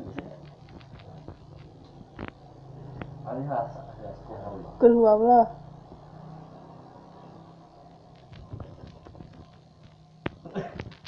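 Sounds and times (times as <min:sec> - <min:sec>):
faint taps and rustles: 0:00.0 - 0:02.4, 0:08.1 - 0:11.0
steady low hum: 0:00.0 - 0:11.0.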